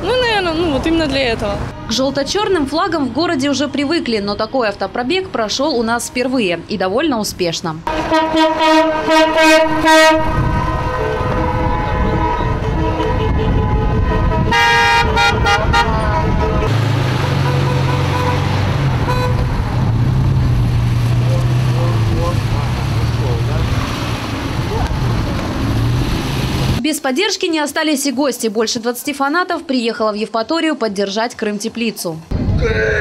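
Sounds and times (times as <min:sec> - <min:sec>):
engine and road noise: 0:00.0 - 0:26.8
car horns honking: 0:07.9 - 0:19.6
low drone of running engines: 0:07.9 - 0:26.8.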